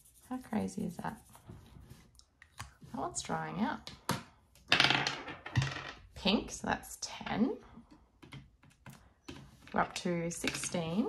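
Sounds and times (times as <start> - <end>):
die clattering on wooden table: 4.1 - 6.0.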